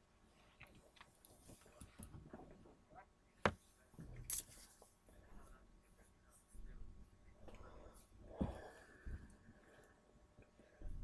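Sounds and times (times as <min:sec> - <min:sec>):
low room noise: 0:00.0 - 0:11.0.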